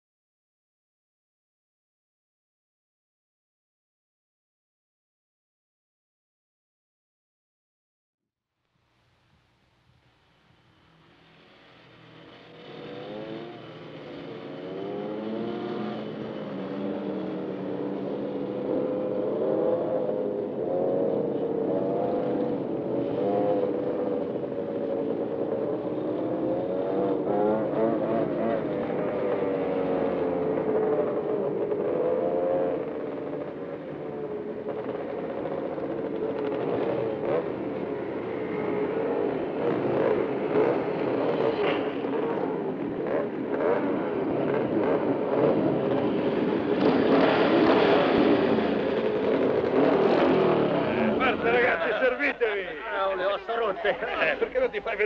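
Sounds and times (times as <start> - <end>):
motorcycle engines revving: 10.4 - 55.0.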